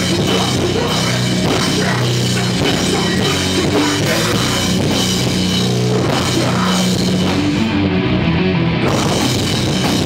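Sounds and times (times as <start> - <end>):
drum kit with cymbals: 0.0 - 7.8, 8.9 - 10.0
bass guitar low notes: 0.0 - 10.0
electric guitar: 0.0 - 10.0.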